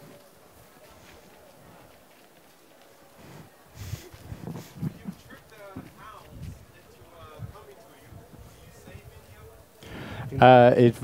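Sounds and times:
low murmur in tent: 0.0s - 11.0s
loud breath into microphone: 3.3s - 4.8s, 9.8s - 10.4s.

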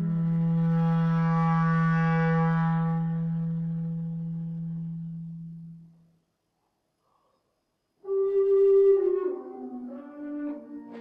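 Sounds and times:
long low held note: 0.0s - 6.0s, 8.0s - 11.0s.

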